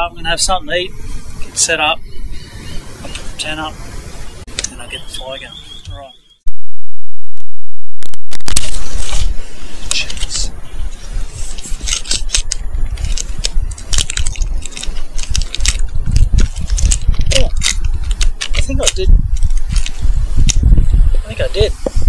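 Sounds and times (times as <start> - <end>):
low microphone rumble: 6.4 - 22.0
gear clicking and rattling: 11.5 - 20.8.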